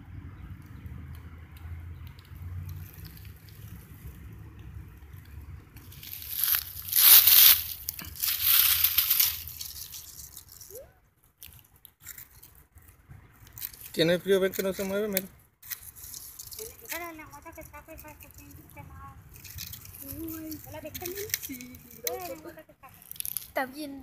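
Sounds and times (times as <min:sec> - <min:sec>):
dry leaves crunching and rustling: 0:02.7 - 0:04.2, 0:05.8 - 0:10.8.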